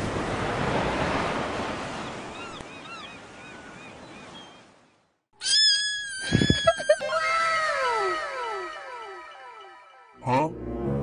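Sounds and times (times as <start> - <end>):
ocean surf: 0.0 - 4.3
cat scream: 5.4 - 8.7
falling whistle-like tones: 5.4 - 10.2.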